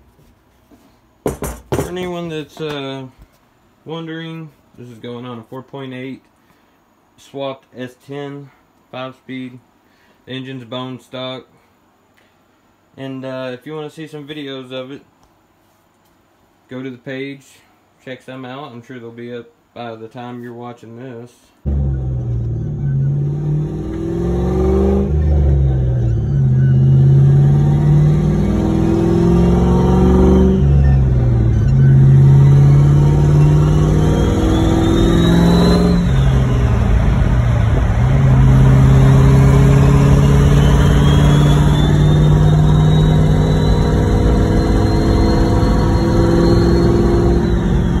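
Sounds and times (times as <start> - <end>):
faint high whine: 21.4 - 48.0
engine accelerating through gears: 21.7 - 48.0.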